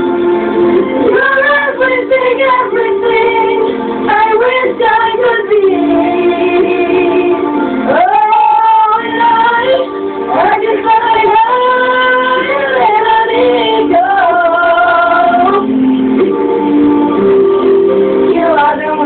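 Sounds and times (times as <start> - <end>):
boys singing: 1.0 - 7.3, 7.9 - 15.6.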